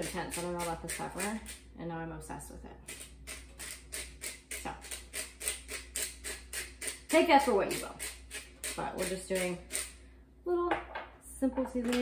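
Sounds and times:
pepper mill grinding: 0.0s - 1.6s, 2.9s - 10.0s.

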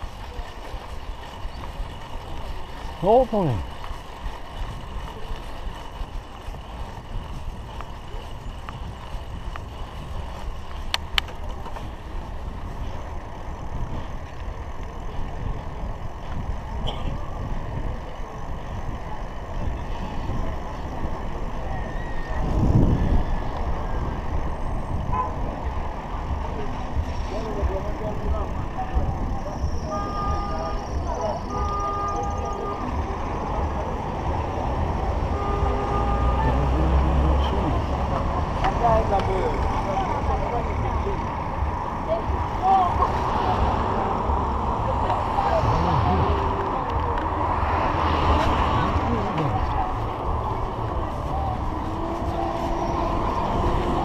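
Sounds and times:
road traffic: 0.0s - 54.0s
wind rumble on microphone: 0.0s - 54.0s.

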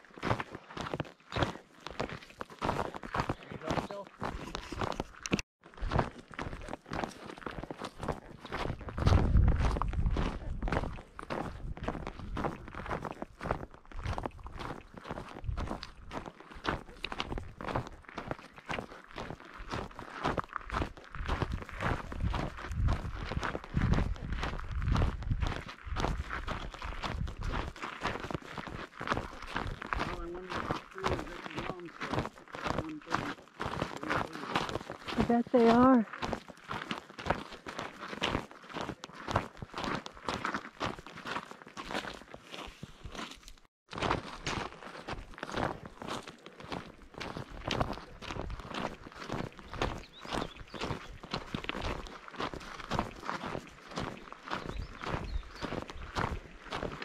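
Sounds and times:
boots crunching on stony trail: 0.0s - 57.0s
low rumble on microphone: 9.0s - 10.8s.

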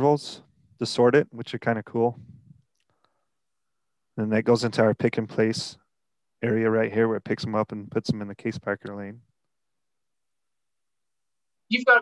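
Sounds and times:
man's voice: 0.0s - 2.3s, 4.2s - 5.8s, 6.4s - 9.2s.

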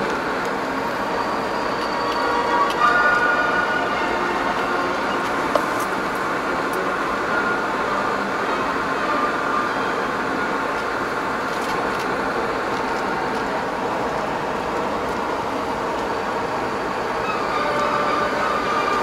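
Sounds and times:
road and engine noise in cabin: 0.0s - 19.0s.

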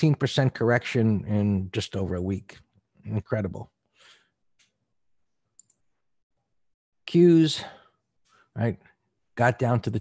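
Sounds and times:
short breath: 3.9s - 4.4s
computer mouse clicks: 5.6s - 5.8s.

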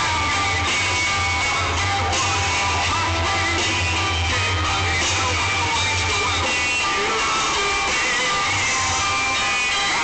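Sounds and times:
live rock band playing loudly: 0.0s - 10.0s.

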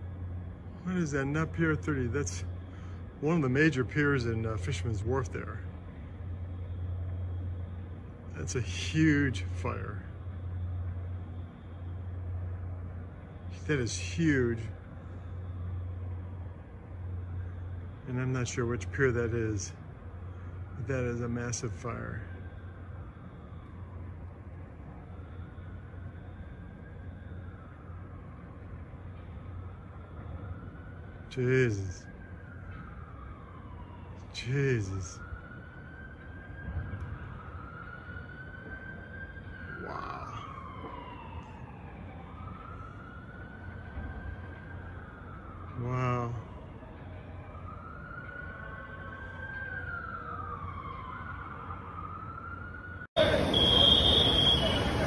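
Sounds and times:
steady low rumble: 0.0s - 36.0s
emergency vehicle siren wailing: 0.0s - 55.0s.

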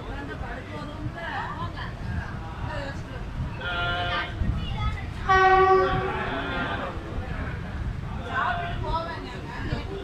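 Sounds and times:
train coaches rumbling: 0.0s - 10.0s
train horn blast: 5.2s - 6.8s.

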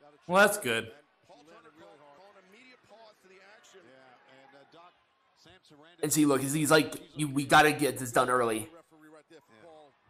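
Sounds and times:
faint background speech: 0.0s - 10.0s.

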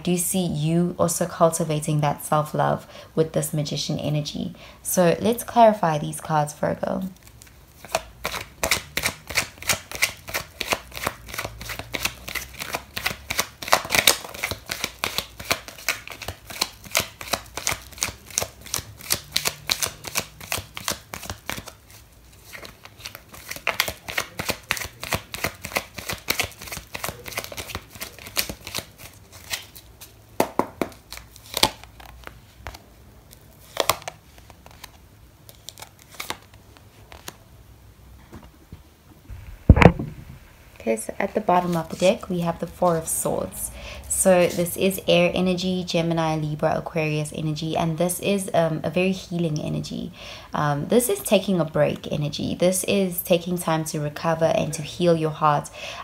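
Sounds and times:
cards being shuffled: 7.0s - 37.4s
cards tapped down on cloth: 30.4s - 31.0s.

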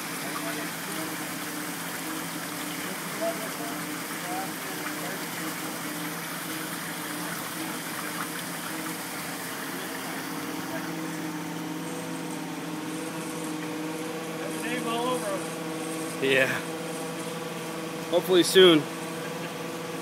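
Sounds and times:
flowing water rushing: 0.0s - 20.0s
low machinery hum: 0.0s - 20.0s.

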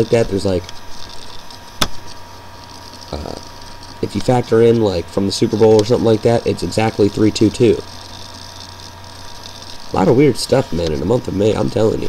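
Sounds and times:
person speaking: 0.0s - 0.7s, 3.1s - 7.9s, 9.9s - 12.0s
low electrical hum: 0.0s - 12.0s.

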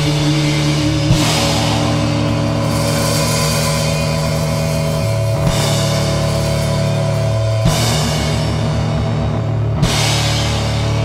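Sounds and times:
band music: 0.0s - 11.0s
drums: 0.0s - 11.0s
electric guitar: 0.0s - 11.0s.

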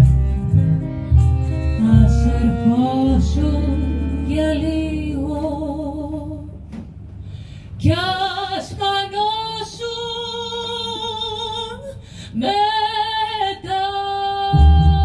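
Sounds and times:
deep bass notes: 0.0s - 7.6s, 14.5s - 15.0s
woman singing: 1.8s - 6.6s, 7.8s - 15.0s.

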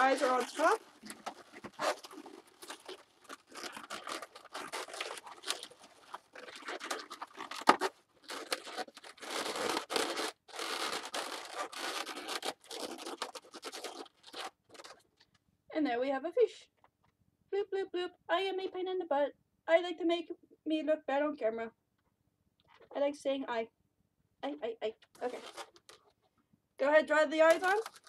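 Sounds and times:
balloons rubbing and squeaking: 0.0s - 15.0s, 25.2s - 26.1s, 26.9s - 28.0s.

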